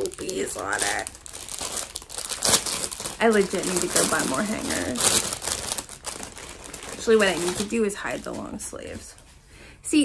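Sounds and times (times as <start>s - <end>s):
plastic bag crinkling: 0.0s - 9.0s.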